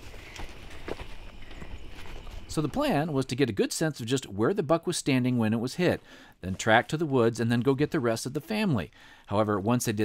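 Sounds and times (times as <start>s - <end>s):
footsteps on dirt and grass: 0.0s - 3.5s, 5.1s - 10.0s.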